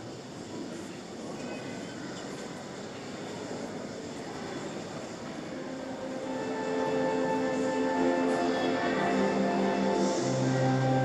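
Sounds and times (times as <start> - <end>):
congregation murmuring: 5.5 - 11.0
music: 5.6 - 11.0.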